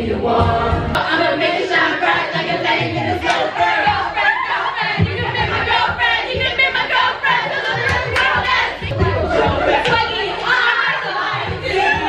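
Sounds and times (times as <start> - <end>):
women singing and shouting karaoke: 0.0 - 12.0.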